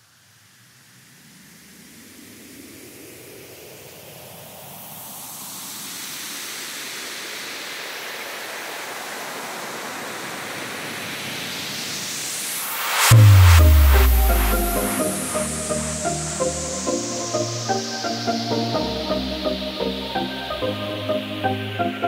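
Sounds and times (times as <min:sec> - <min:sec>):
rising noise sweep: 0:12.0 - 0:20.1.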